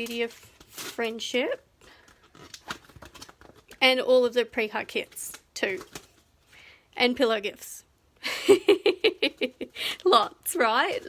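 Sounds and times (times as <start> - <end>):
plastic packet crinkling: 0.0 - 3.8
woman speaking: 3.8 - 5.9, 7.0 - 7.8, 9.9 - 11.0.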